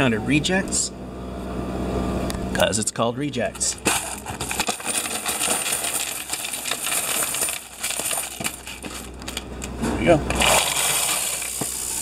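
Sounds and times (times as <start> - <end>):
coins pouring into machine: 3.7 - 9.4, 10.4 - 12.0.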